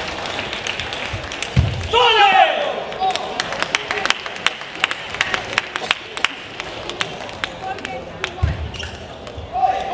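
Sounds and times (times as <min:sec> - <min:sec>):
murmur of voices: 0:00.0 - 0:09.9.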